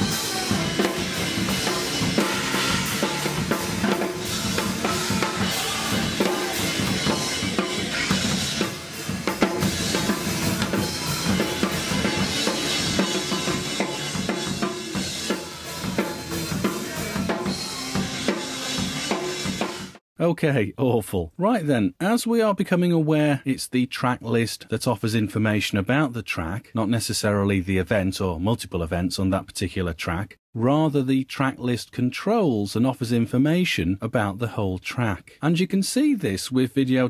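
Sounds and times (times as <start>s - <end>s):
band music: 0.0s - 20.0s
hard-hit drums: 0.0s - 20.0s.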